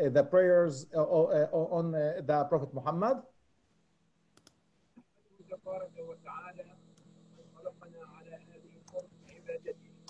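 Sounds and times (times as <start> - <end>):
man talking: 0.0 - 3.3
steady electrical hum: 0.0 - 10.0.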